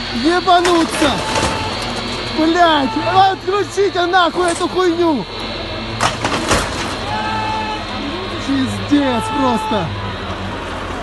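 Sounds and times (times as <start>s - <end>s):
loud clattering burst: 5.9s - 7.1s
long high-pitched cry: 7.0s - 8.5s.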